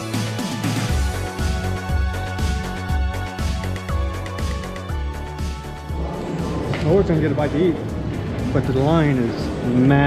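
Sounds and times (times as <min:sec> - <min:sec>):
synthwave music: 0:00.0 - 0:10.0
man talking: 0:06.6 - 0:07.9, 0:08.5 - 0:10.0.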